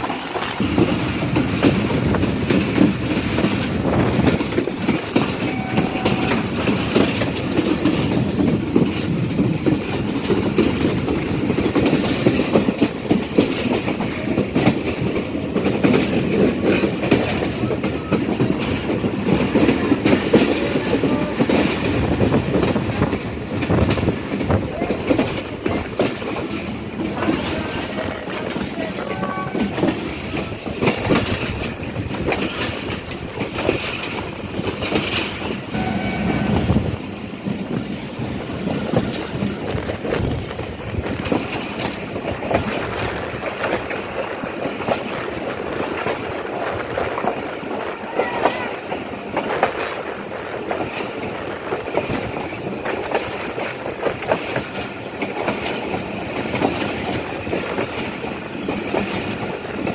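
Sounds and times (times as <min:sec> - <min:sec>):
rail-joint clickety-clack: 0:00.0 - 0:59.9
train wheels rumbling on rails: 0:00.0 - 0:59.9.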